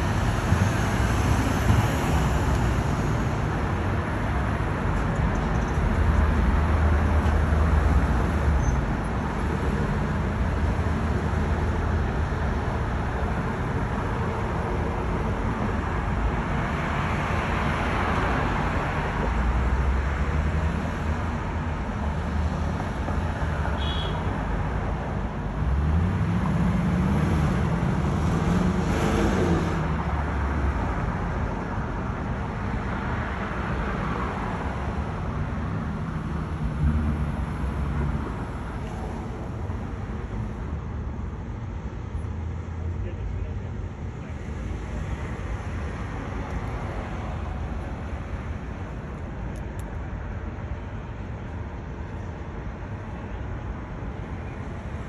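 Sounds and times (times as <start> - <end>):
traffic rumble: 0.0 - 55.0.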